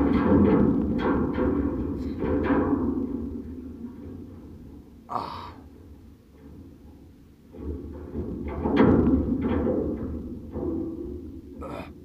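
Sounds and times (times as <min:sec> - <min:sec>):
man breathing hard: 0:05.1 - 0:05.7.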